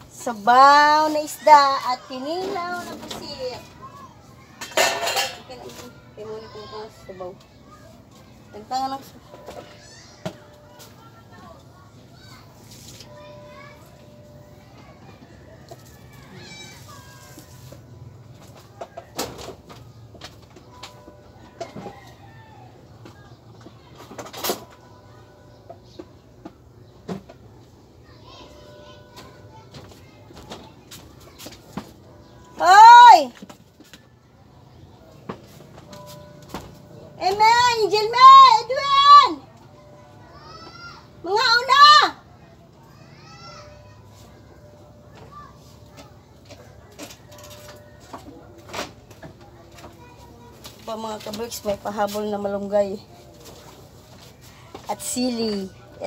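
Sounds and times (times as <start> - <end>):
distant children talking and playing: 0.0 - 56.0.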